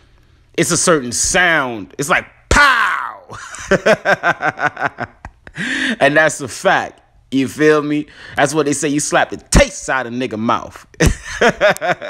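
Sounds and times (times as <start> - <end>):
man laughing: 3.3 - 6.1, 11.0 - 12.0
breathy intake of breath: 5.6 - 6.0.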